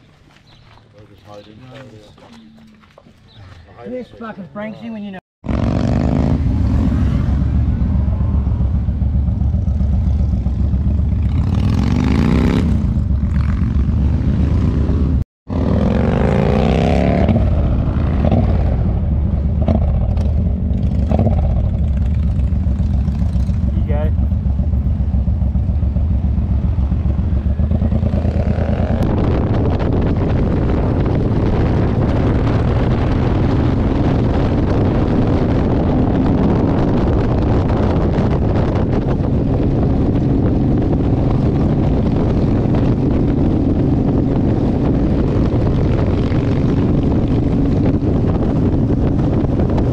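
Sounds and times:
motorcycle engine running: 0:05.4 - 0:49.9
wind noise on microphone: 0:05.4 - 0:49.9.

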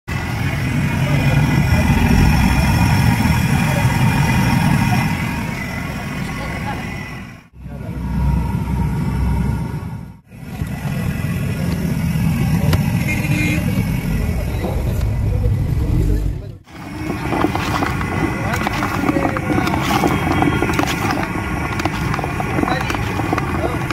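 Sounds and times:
traffic noise: 0:00.1 - 0:23.9
people talking: 0:00.4 - 0:07.0, 0:07.6 - 0:08.2, 0:11.4 - 0:23.9.

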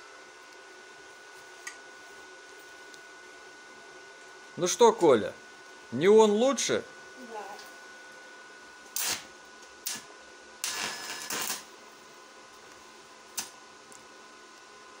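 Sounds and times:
welding arc crackling: 0:08.9 - 0:11.8, 0:12.6 - 0:14.1.

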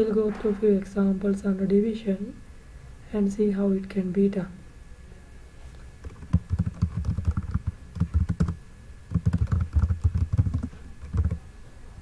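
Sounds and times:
typing on computer keyboard: 0:06.0 - 0:11.4.

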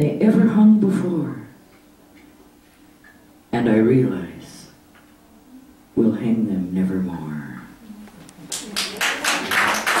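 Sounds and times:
audience applauding: 0:08.5 - 0:10.0.

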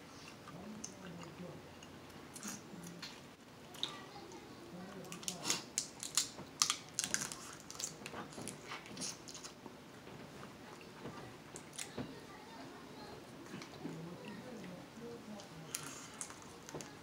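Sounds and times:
crab shells cracking: 0:05.0 - 0:09.6, 0:15.7 - 0:16.9.

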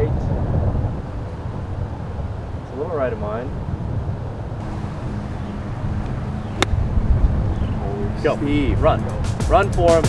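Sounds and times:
wind on microphone: 0:00.0 - 0:09.3
golf club striking ball: 0:04.6 - 0:07.0
faint steady hum: 0:04.6 - 0:08.2.

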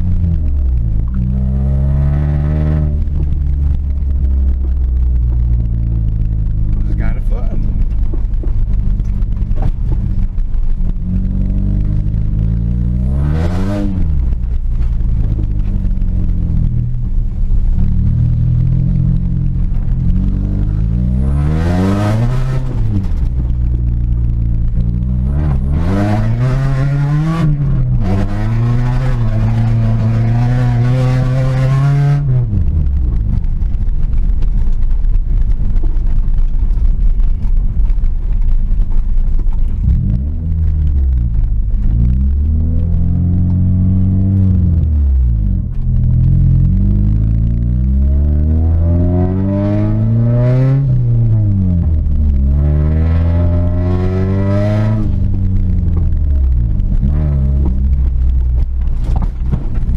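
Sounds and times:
car engine revving hard: 0:01.2 - 0:03.1, 0:11.0 - 0:14.2, 0:19.9 - 0:23.1, 0:25.0 - 0:32.5, 0:46.2 - 0:55.3.

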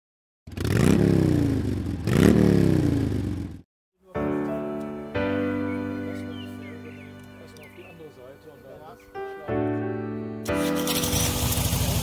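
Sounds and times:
motorcycle engine revving: 0:00.5 - 0:03.6, 0:10.5 - 0:12.0.

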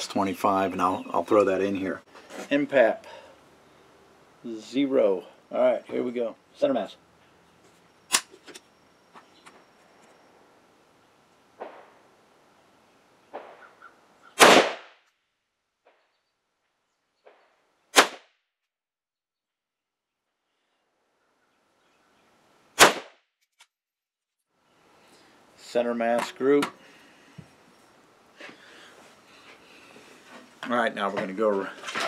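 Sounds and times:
rifle shots with echo: 0:14.4 - 0:14.9.

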